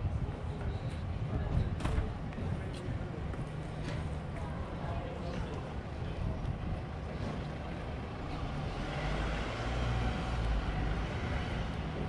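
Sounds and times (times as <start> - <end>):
urban background noise: 0.0 - 12.0.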